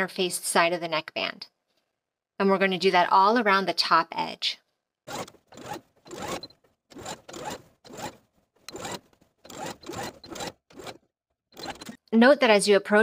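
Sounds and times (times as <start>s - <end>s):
sewing machine stitching: 5.1s - 12.1s.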